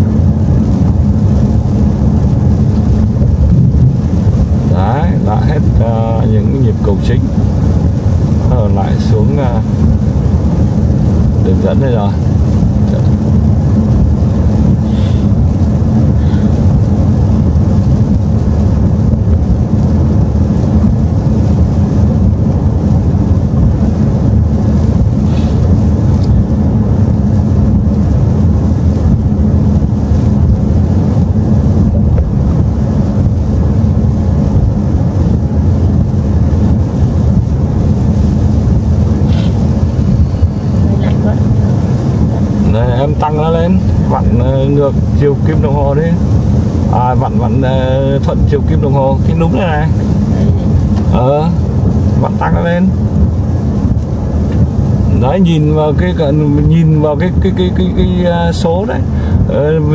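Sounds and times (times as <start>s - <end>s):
car tyres and engine rumble: 0.0s - 59.9s.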